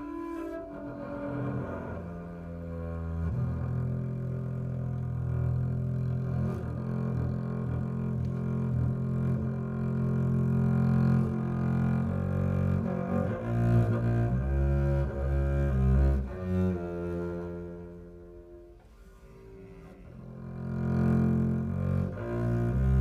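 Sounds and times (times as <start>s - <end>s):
bowed double bass: 0.0s - 23.0s.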